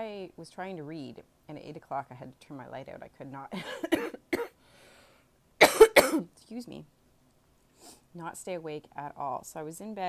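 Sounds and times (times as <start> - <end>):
woman coughing: 3.6 - 4.6, 5.6 - 6.3.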